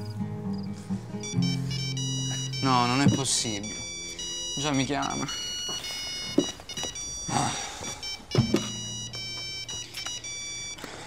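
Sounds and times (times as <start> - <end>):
phone electronic ringtone: 1.2 - 11.0.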